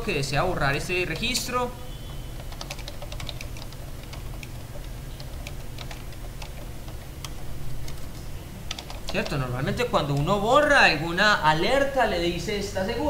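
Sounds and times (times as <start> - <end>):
steady low hum: 0.0 - 13.0
keyboard key clicks: 1.1 - 9.4.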